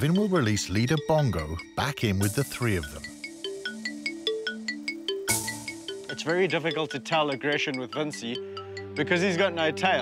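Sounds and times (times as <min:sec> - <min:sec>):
light chiming music: 0:00.0 - 0:10.0.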